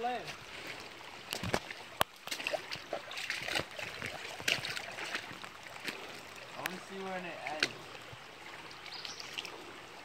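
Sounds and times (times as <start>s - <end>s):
creek water trickling: 0.0s - 10.0s
footsteps on leaves and rock: 2.4s - 7.6s.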